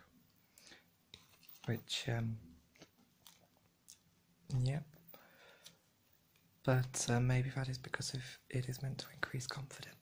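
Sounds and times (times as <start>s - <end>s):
faint breathing: 0.4s - 1.0s, 5.1s - 5.8s
person speaking softly: 1.2s - 2.6s, 6.6s - 10.0s.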